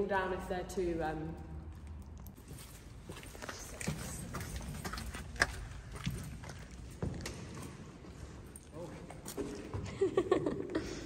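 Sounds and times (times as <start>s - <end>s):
footsteps on gritty stone floor: 1.4s - 10.0s.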